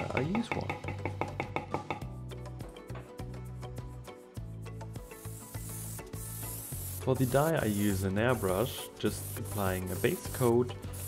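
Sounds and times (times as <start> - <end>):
background music: 0.0 - 11.0
airbrush hissing: 4.9 - 11.0.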